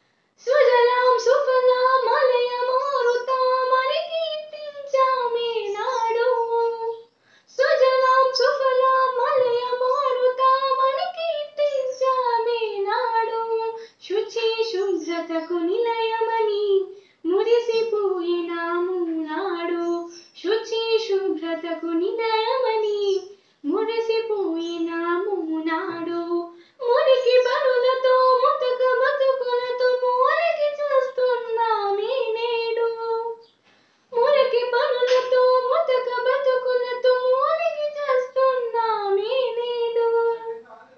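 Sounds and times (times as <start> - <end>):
girl singing unaccompanied: 0.4 - 40.9.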